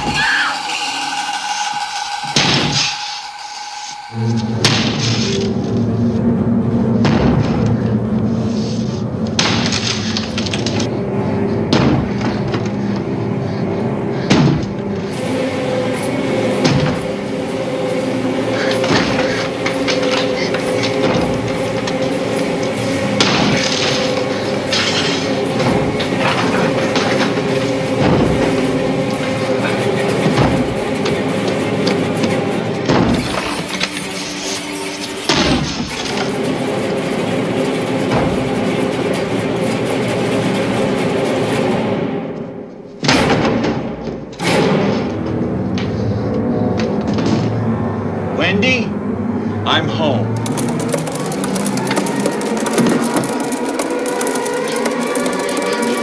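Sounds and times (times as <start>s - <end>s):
dense film score: 0.0s - 56.0s
tracked snow vehicle engine running: 45.7s - 56.0s.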